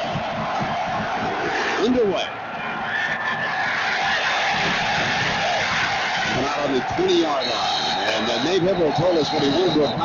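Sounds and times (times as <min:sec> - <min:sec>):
stadium crowd roaring: 0:00.0 - 0:10.0.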